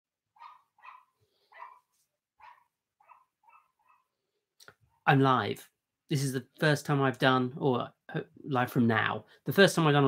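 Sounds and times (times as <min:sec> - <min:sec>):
dog barking faintly: 0:00.4 - 0:04.1.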